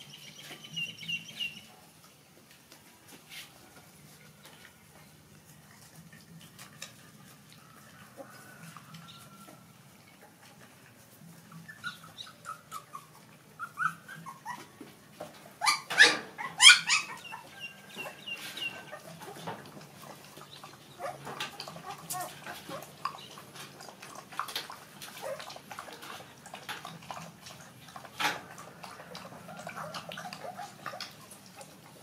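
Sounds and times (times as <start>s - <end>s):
puppies whimpering and squealing: 11.2s - 14.8s, 15.4s - 32.0s
puppy yelps: 11.7s - 14.7s, 15.6s - 19.2s.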